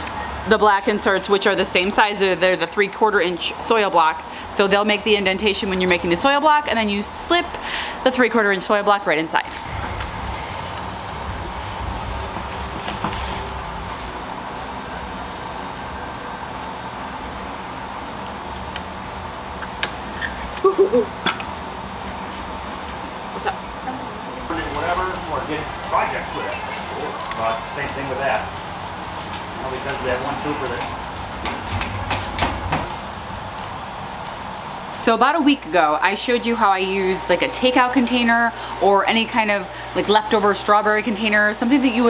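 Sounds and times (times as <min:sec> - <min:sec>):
background hiss and hum: 0:00.0 - 0:41.9
steady low rumble: 0:09.1 - 0:20.1.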